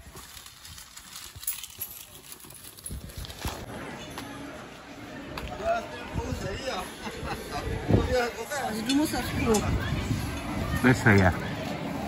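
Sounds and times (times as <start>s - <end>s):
faint voices: 1.9s - 12.0s.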